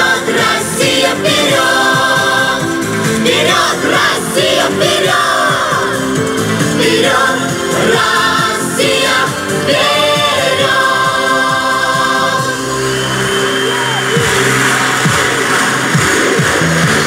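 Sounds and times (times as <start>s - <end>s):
upbeat pop song: 0.0s - 13.2s.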